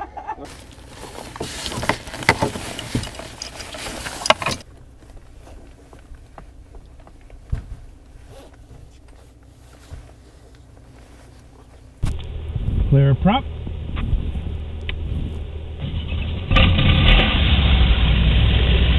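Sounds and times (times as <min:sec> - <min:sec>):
low steady hum: 0:00.0 - 0:18.9
clothing and gear rustling: 0:00.5 - 0:12.2
wind noise on microphone: 0:12.0 - 0:18.2.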